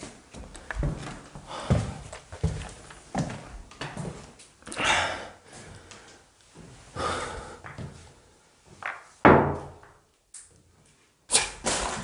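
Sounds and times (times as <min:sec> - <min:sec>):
sharp knocks and thuds: 0:08.8 - 0:09.9.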